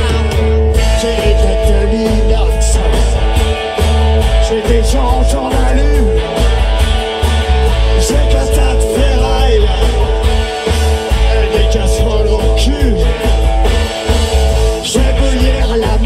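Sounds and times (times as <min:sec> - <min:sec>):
bass guitar: 0:00.0 - 0:16.0
electric guitar: 0:00.0 - 0:16.0
steady drum beat: 0:00.0 - 0:16.0.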